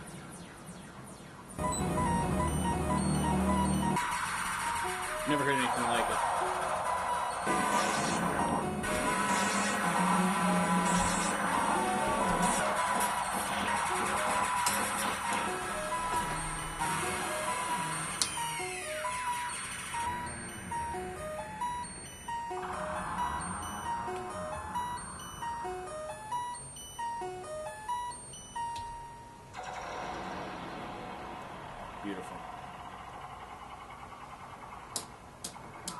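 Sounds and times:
noisy electronic synth wash: 0:00.0 - 0:26.1, 0:29.6 - 0:35.8
short bleeping synth notes: 0:01.6 - 0:04.1, 0:15.4 - 0:29.9
falling synth sweep: 0:01.6 - 0:26.4, 0:29.6 - 0:34.9.

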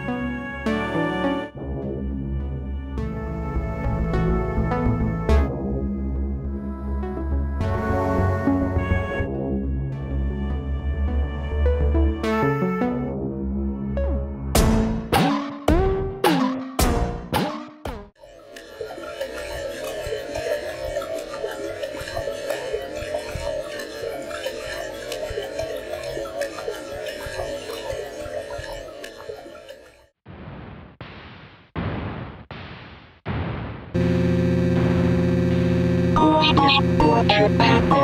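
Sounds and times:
crackling bubbling noise texture: 0:18.2 - 0:34.2
steady drone of held tones: 0:34.0 - 0:38.0.

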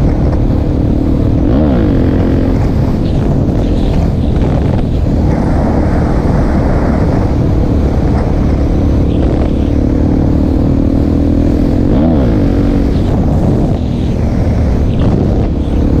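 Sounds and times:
heavy wind rush: 0:00.0 - 0:16.0
motorcycle engine running: 0:00.0 - 0:16.0.

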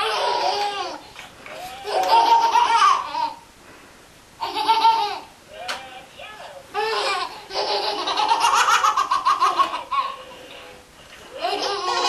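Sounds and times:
baby laughing: 0:00.0 - 0:01.0, 0:01.8 - 0:03.4, 0:04.4 - 0:05.3, 0:06.7 - 0:10.4, 0:11.3 - 0:12.0.

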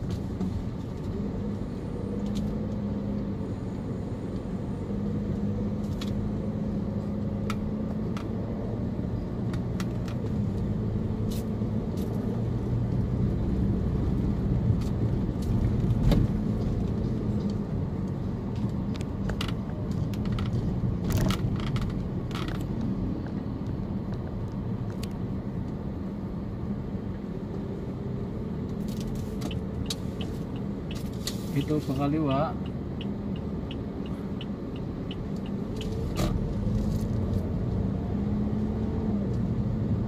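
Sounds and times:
car engine and road noise: 0:00.0 - 0:40.0.

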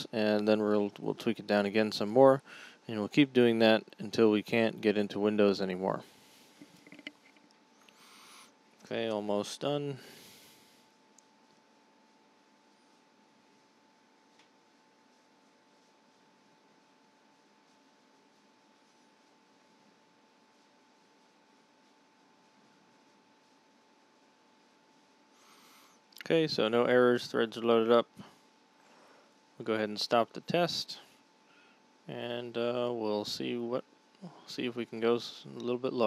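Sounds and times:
thin steady hum: 0:00.0 - 0:36.0.

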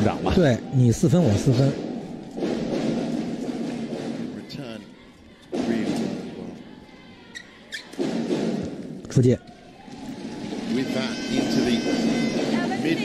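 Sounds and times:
arena crowd voices: 0:00.0 - 0:13.0.

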